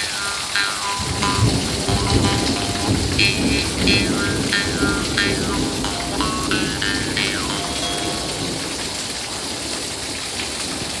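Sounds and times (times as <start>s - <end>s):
steady rain: 0.0s - 11.0s
jaw harp twanging: 0.5s - 8.6s.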